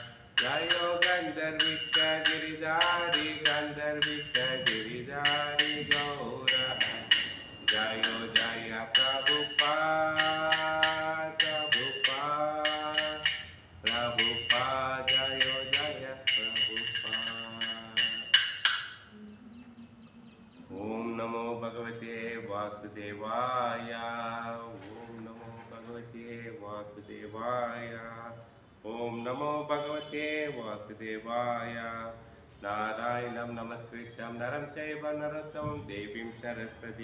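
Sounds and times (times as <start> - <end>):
man singing a chant: 0.0 - 18.4, 20.7 - 37.0
hand cymbals clashing: 0.0 - 19.2.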